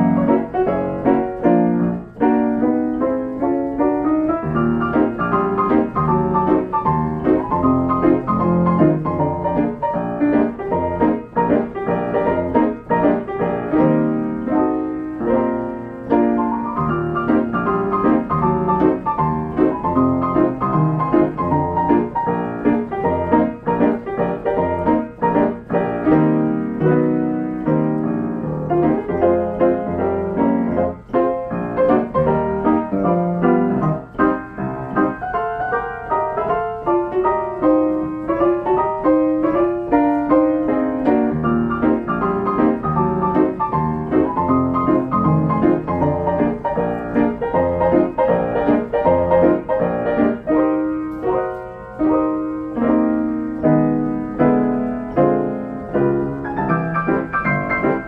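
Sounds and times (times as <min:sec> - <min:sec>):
solo piano playing: 0:00.0 - 0:58.0.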